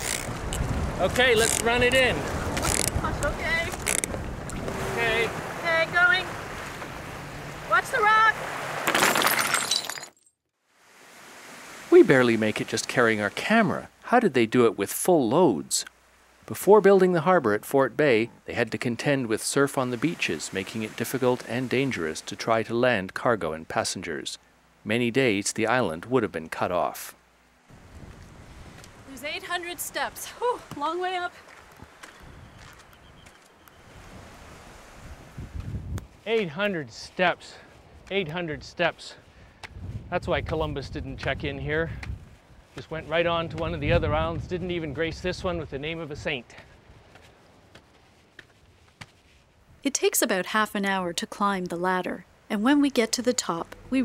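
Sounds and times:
wind buffeting microphone: 0.0s - 5.6s, 27.7s - 30.8s, 31.7s - 36.2s, 39.4s - 47.2s
surf and wind: 0.0s - 8.9s, 10.7s - 47.8s
faint steady hiss: 10.6s - 54.0s.

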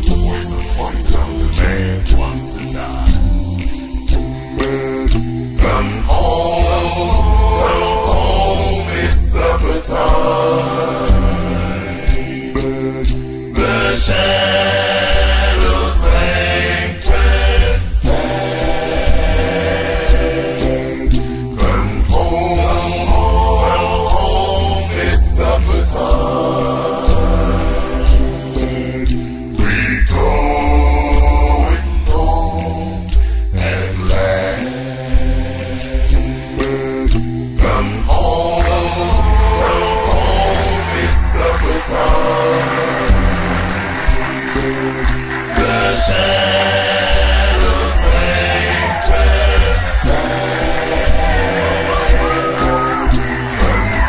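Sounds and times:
a cappella gospel singing: 0.0s - 54.0s
low bass vocal part: 0.0s - 54.0s.

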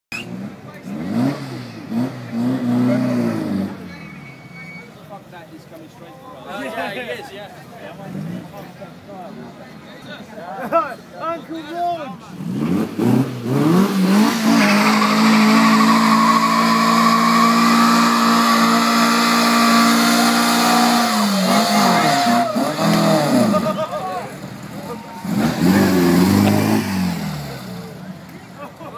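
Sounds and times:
engine revving hard: 0.9s - 3.8s, 12.4s - 23.7s, 25.2s - 27.9s
tyres squealing: 14.1s - 20.1s.

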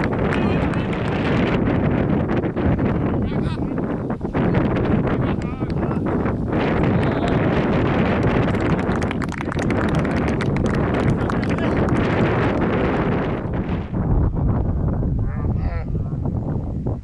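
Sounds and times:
wind buffeting microphone: 0.0s - 17.0s.

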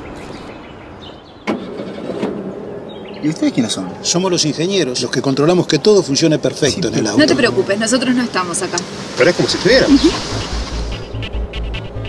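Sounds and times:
outdoor ambience: 0.0s - 12.0s.

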